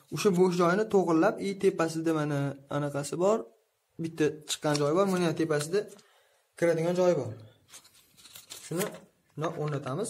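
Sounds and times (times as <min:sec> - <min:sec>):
man talking: 0:00.0 - 0:06.0, 0:06.6 - 0:07.6, 0:08.6 - 0:10.0
scratchy handling noise: 0:07.6 - 0:09.8.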